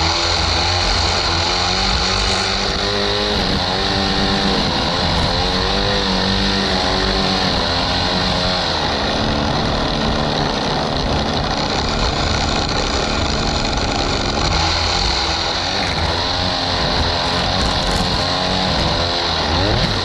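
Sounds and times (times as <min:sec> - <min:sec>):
string trimmer engine revving: 0:00.0 - 0:20.0
trimmer line cutting grass: 0:00.0 - 0:20.0.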